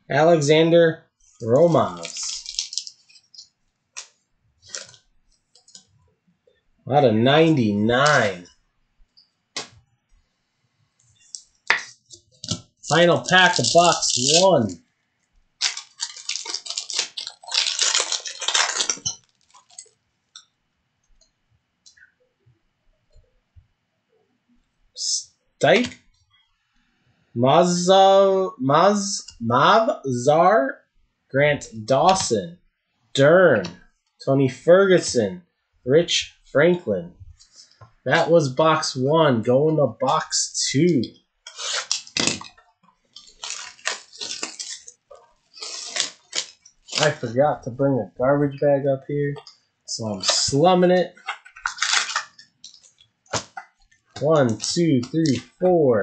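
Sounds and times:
foil wrapper tearing and crinkling: 0:01.6 - 0:03.4, 0:04.7 - 0:05.0, 0:12.4 - 0:14.7, 0:15.6 - 0:20.0, 0:41.5 - 0:47.2, 0:51.2 - 0:55.4.

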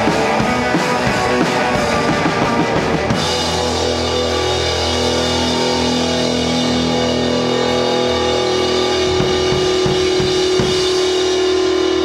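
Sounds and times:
drums: 0:00.0 - 0:12.0
electric guitars ringing chord: 0:00.0 - 0:12.0.

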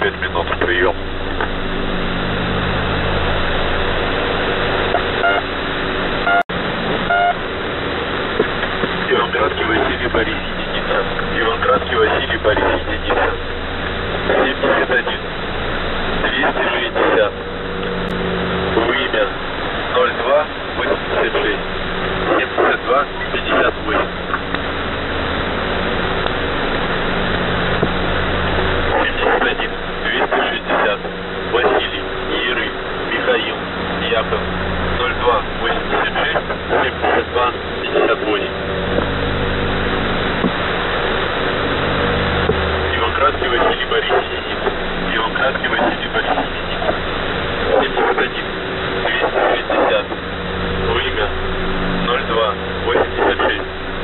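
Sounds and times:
low droning hum: 0:00.0 - 0:54.0
radio static hiss and crackles: 0:00.0 - 0:54.0.

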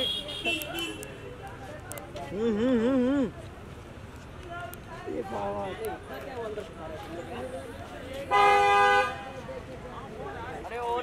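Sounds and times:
street chatter: 0:00.0 - 0:11.0.

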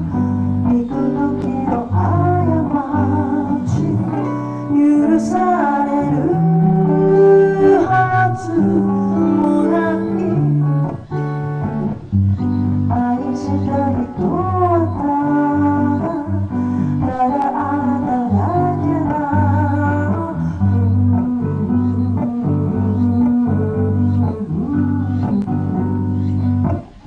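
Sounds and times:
woman singing into a microphone: 0:00.0 - 0:11.2, 0:12.7 - 0:26.5
electric guitar: 0:00.0 - 0:27.0.

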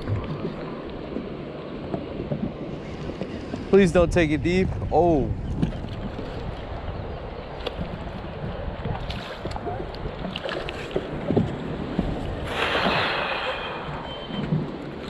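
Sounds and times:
light water noise: 0:00.0 - 0:15.0
wind on microphone: 0:01.9 - 0:15.0
fish splashing: 0:12.4 - 0:15.0.

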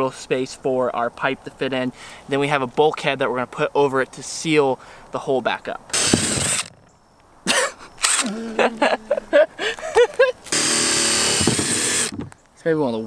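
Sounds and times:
cordless drill whirring: 0:05.9 - 0:06.8, 0:08.0 - 0:08.5, 0:10.5 - 0:12.2.

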